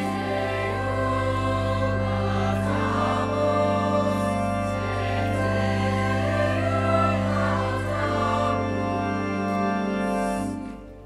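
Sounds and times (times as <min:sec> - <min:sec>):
youth choir singing: 0:00.0 - 0:09.2
pipe organ: 0:00.0 - 0:11.0.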